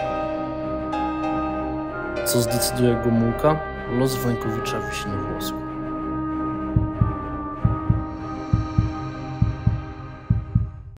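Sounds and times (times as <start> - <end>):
heartbeat thumps: 6.6 - 11.0.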